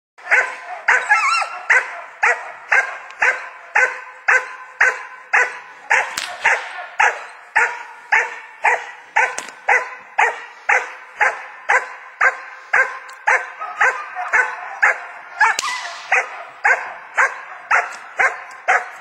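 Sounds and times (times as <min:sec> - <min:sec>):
puppy barking: 0:00.2 - 0:19.0.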